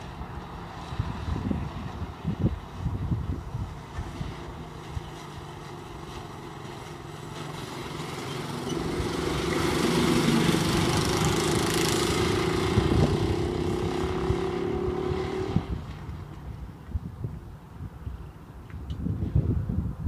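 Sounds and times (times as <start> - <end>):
go-kart engine running: 0.0 - 16.3.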